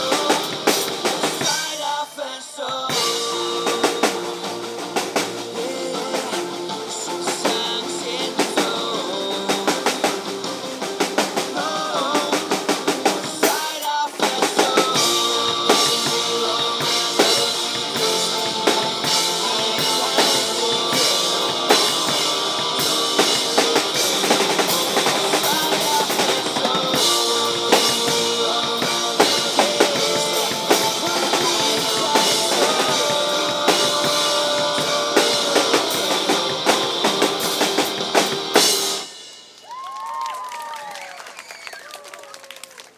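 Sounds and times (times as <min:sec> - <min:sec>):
pop-rock backing track: 0:00.0 - 0:39.6
drum kit with cymbals: 0:00.0 - 0:39.9.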